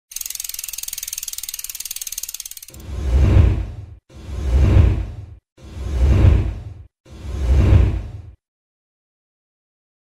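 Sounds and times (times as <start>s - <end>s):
fast ratchet clicking: 0.1s - 2.8s
deep whoosh: 2.8s - 8.4s.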